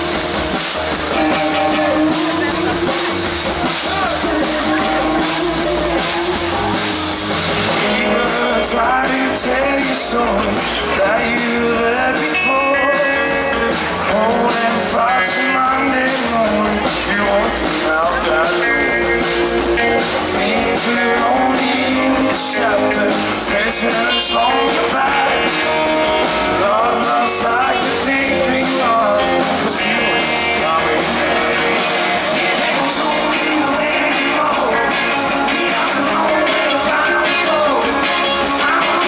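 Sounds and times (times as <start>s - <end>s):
drums: 0.0s - 39.0s
electric guitars: 0.0s - 39.0s
man singing: 0.8s - 39.0s.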